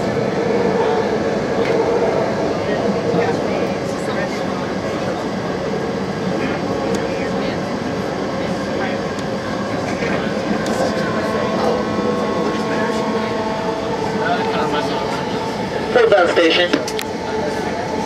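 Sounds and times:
steady whining tones: 0:00.0 - 0:18.0
train wheels rumbling on rail: 0:00.0 - 0:18.0.

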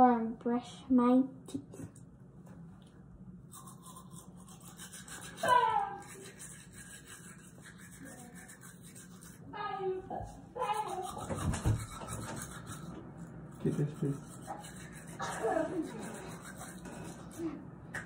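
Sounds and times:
toothbrush scrubbing teeth: 0:03.5 - 0:09.5, 0:10.1 - 0:17.6.

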